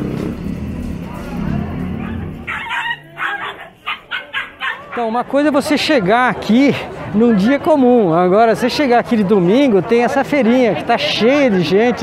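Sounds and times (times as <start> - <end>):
background music: 0.0 - 4.8
small dog yapping: 2.0 - 5.0.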